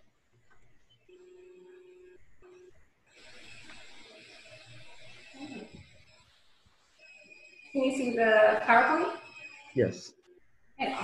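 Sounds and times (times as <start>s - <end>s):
electronic beep: 7.0s - 9.9s.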